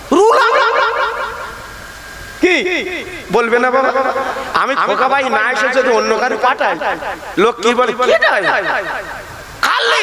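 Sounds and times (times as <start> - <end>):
man preaching through loudspeakers: 2.4 - 10.0.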